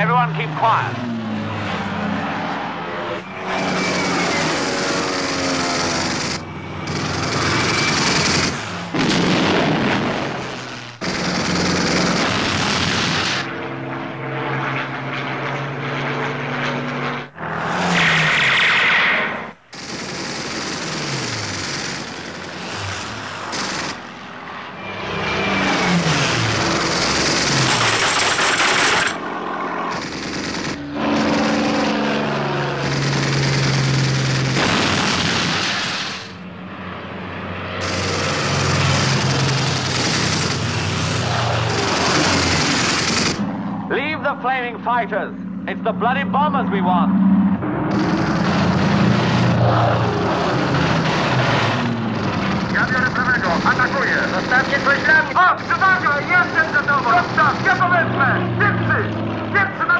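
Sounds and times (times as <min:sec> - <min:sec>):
fighter plane engines: 0:00.0 - 0:59.9
machine-gun fire: 0:03.4 - 0:13.5, 0:19.7 - 0:24.1, 0:25.7 - 0:29.2, 0:29.9 - 0:36.3, 0:37.8 - 0:43.4, 0:47.9 - 0:49.6, 0:50.2 - 0:58.2.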